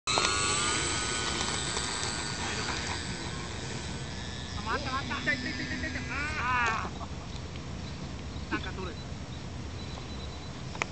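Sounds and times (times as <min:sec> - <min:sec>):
model aircraft motor whining: 0:00.1 - 0:07.1.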